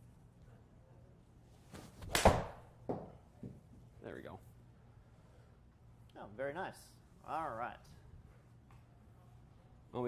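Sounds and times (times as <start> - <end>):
golf club swishing: 1.6 - 2.4.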